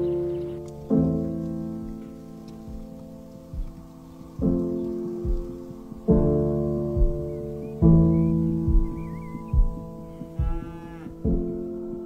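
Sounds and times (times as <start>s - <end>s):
background music with low notes: 0.0s - 12.0s
cow mooing: 10.1s - 11.3s.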